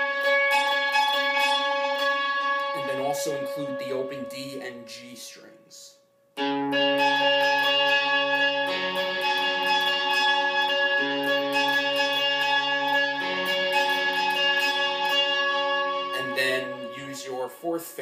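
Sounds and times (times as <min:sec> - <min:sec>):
electric guitar picking high notes: 0:00.0 - 0:05.8, 0:06.4 - 0:17.6.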